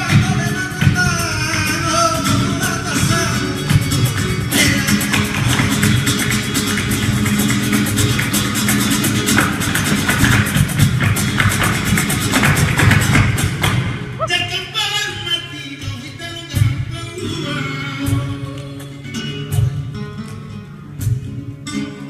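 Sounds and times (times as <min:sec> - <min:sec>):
acoustic flamenco guitars: 0:00.0 - 0:22.0.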